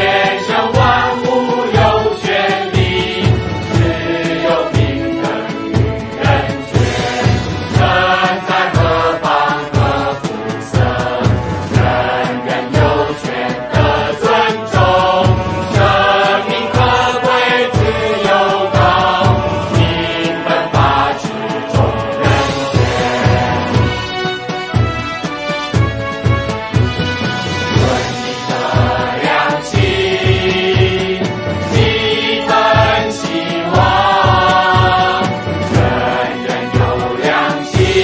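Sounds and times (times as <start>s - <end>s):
people singing a song: 0.0s - 24.9s, 27.4s - 38.0s
low drum beat: 0.0s - 38.0s.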